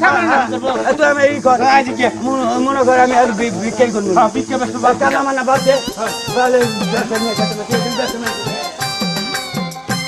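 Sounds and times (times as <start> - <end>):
man talking: 0.0 - 9.5
steady hiss: 0.0 - 10.0.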